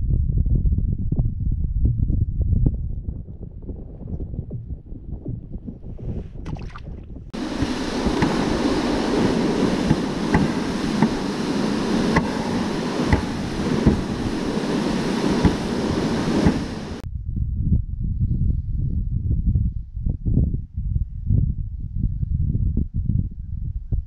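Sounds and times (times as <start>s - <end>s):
wind rumble on microphone: 0.0s - 24.0s
sled scraping over snow: 7.4s - 17.0s.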